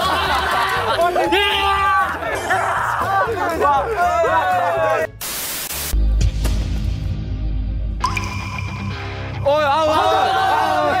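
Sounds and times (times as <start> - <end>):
young men shouting and cheering: 0.0 - 5.2, 9.4 - 11.0
static hiss: 5.2 - 6.0.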